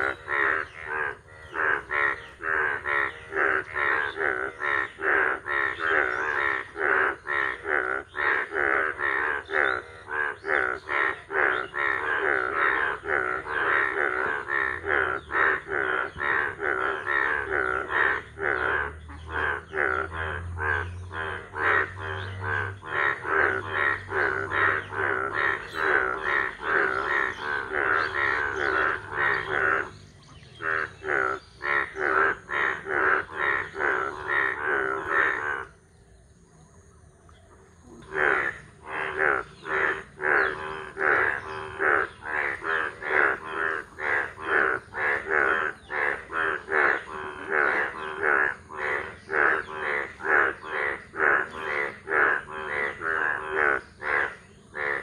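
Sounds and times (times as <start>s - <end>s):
bullfrogs croaking: 0.0s - 55.0s.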